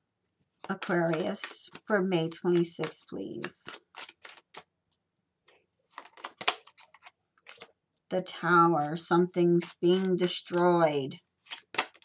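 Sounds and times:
cards shuffling: 0.6 - 4.7, 5.4 - 7.8, 8.4 - 12.0.

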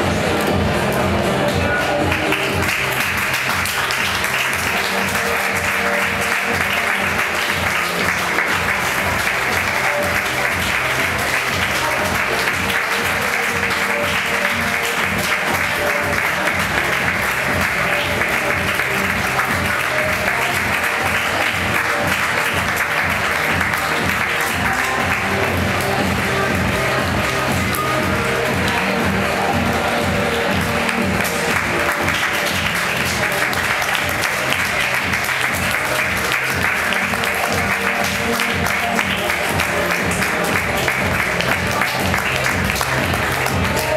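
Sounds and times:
recorded music: 0.0 - 43.9
audience applause: 0.1 - 43.9.

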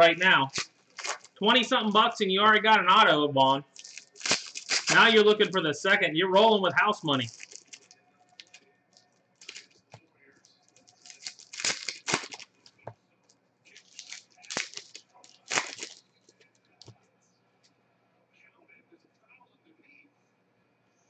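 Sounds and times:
foil wrapper tearing and crinkling: 0.3 - 1.4, 3.7 - 5.6, 7.1 - 8.6, 9.4 - 9.8, 10.8 - 12.9, 13.7 - 16.0.

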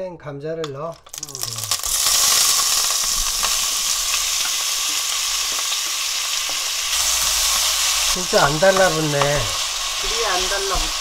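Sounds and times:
potatoes sizzling in hot oil: 1.0 - 11.0.

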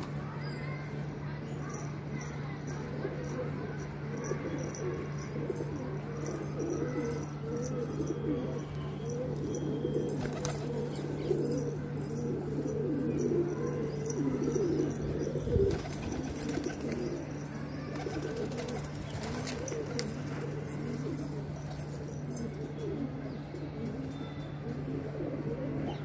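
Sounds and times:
pigeons cooing: 2.2 - 26.0.

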